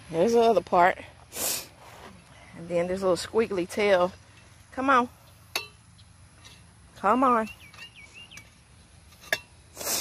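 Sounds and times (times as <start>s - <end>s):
scraping across dry dirt: 1.2s - 3.3s, 6.0s - 10.0s.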